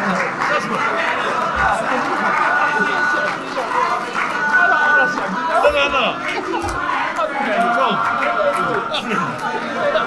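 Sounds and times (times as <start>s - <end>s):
overlapping indistinct conversation: 0.0s - 10.0s.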